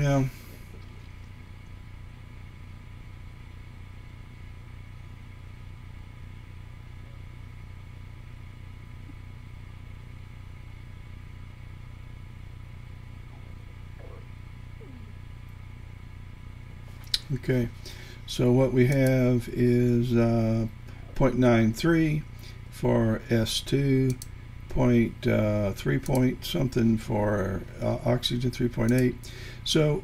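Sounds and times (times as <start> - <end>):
low electrical hum: 0.0 - 30.0.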